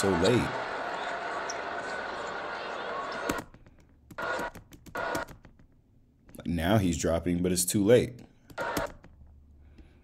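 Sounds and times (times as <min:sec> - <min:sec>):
basketball game broadcast crowd: 0:00.0 - 0:03.6, 0:04.2 - 0:05.3.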